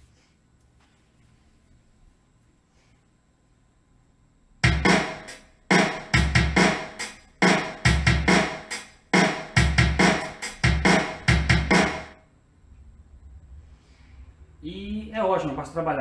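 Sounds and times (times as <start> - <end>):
drum kit rhythm: 4.6 - 12.2.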